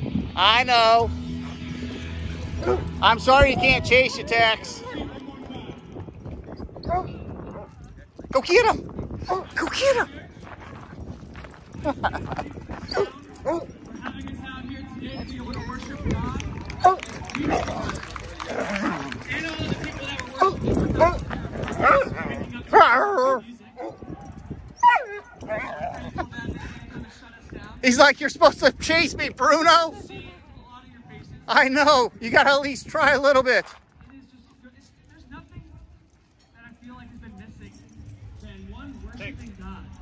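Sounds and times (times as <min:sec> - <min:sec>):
dog paws pattering on gravel: 0:09.0 - 0:22.6.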